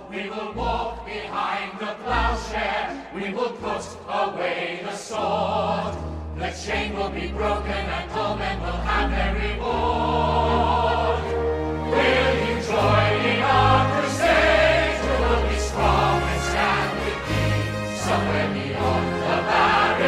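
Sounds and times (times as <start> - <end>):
choir singing: 0.0 - 20.0
orchestra playing: 8.6 - 20.0.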